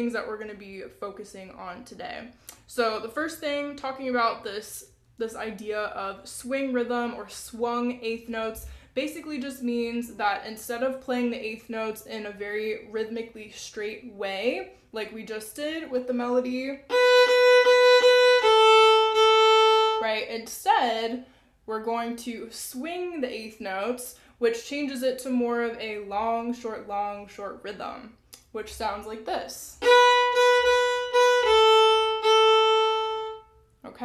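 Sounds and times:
fiddle bowing: 0:16.8 - 0:20.2, 0:29.8 - 0:33.6.

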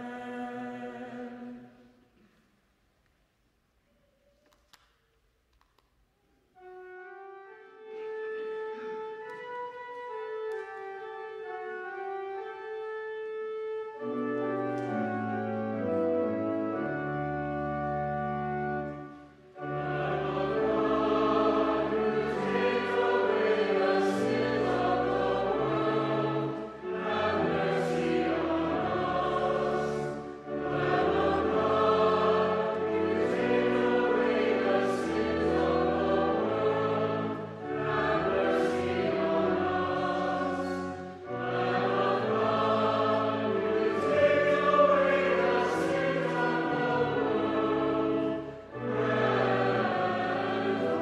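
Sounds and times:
choir singing: 0:00.0 - 0:02.3, 0:14.0 - 0:51.0
organ sustaining low notes: 0:06.5 - 0:51.0.

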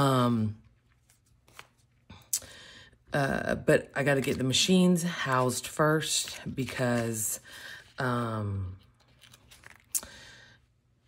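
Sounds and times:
paper rustling: 0:00.7 - 0:02.0, 0:08.8 - 0:10.0.

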